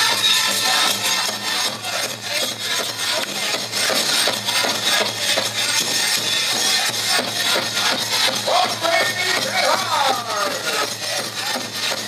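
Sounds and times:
drum beating fast: 0:00.0 - 0:12.0
jingling of dancers' regalia: 0:00.0 - 0:12.0
singers chanting: 0:00.0 - 0:12.0.

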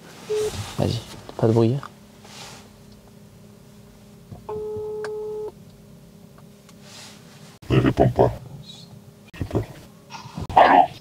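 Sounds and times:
phone ringback beep: 0:00.3 - 0:00.5, 0:04.5 - 0:05.5.

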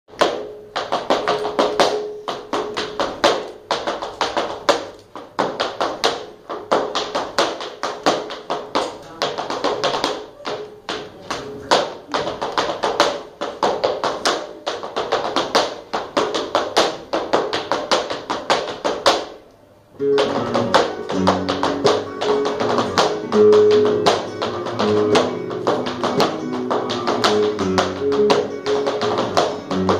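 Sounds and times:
heeled shoes stamping on stage: 0:00.1 - 0:19.4, 0:20.0 - 0:29.9
acoustic guitar playing: 0:20.0 - 0:29.9.

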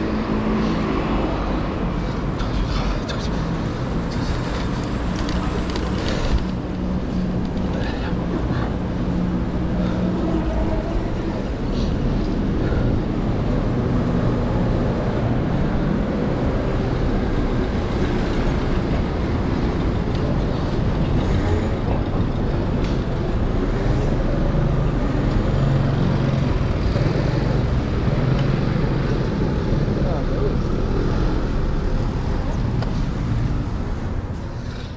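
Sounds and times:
city street traffic: 0:00.0 - 0:34.9.

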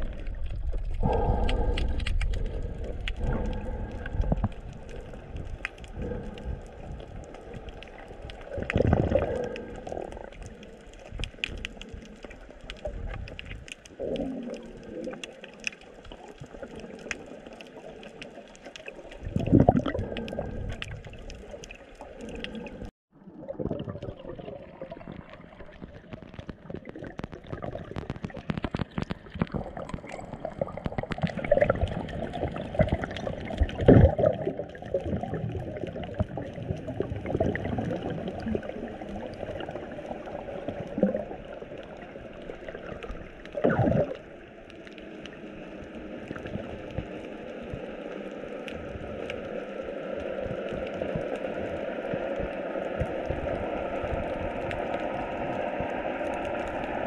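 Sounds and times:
gurgling rush of bubbling water: 0:00.0 - 0:57.0
underwater clicks and crackles: 0:00.0 - 0:57.0.

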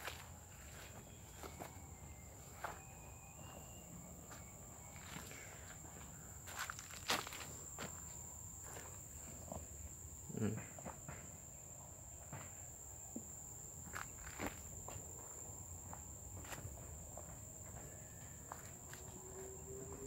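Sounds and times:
faint footsteps: 0:00.0 - 0:09.9, 0:13.2 - 0:20.0
rustling of plants: 0:04.3 - 0:09.7.

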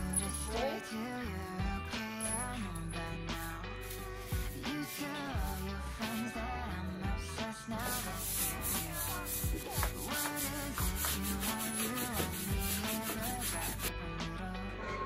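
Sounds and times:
background music with beat: 0:00.0 - 0:15.0
broom sweeping tiled floor: 0:03.3 - 0:06.4, 0:07.7 - 0:13.9.

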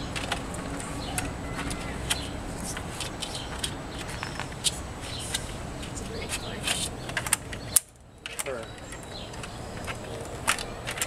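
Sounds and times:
indistinct background voices: 0:00.0 - 0:07.6
sharp clicks and knocks: 0:00.0 - 0:11.0.

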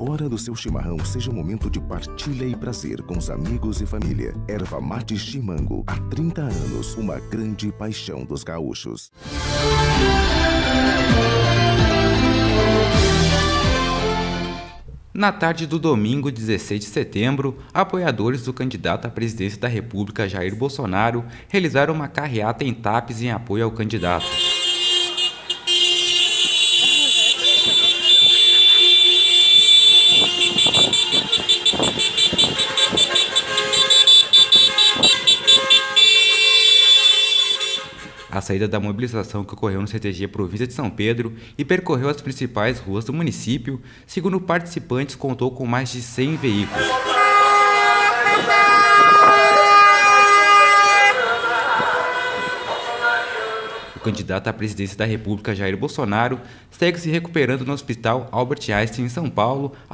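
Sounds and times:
car horns honking: 0:24.0 - 0:38.5, 0:46.3 - 0:54.1
traffic noise: 0:24.0 - 0:38.5, 0:46.2 - 0:54.2
cars driving past: 0:24.2 - 0:38.3, 0:46.3 - 0:54.1.

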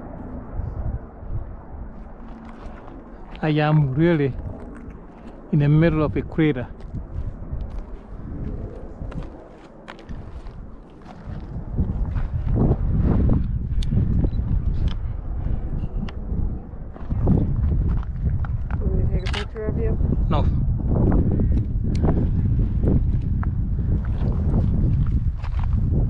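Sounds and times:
wind rumbling on microphone: 0:00.0 - 0:26.0
footsteps crunching on rocky trail: 0:01.9 - 0:05.5, 0:06.7 - 0:13.6, 0:22.8 - 0:26.0.

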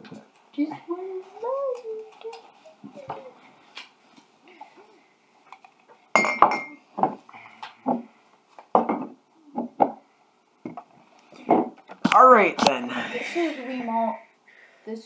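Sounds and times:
ceramic mugs clinking: 0:06.1 - 0:06.8
mugs knocking on wooden table: 0:07.8 - 0:08.1, 0:08.7 - 0:10.0.

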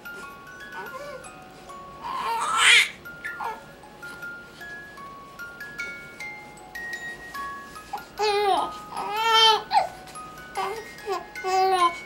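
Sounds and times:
crib mobile chiming tune: 0:00.0 - 0:12.0
baby cooing: 0:02.0 - 0:03.6.

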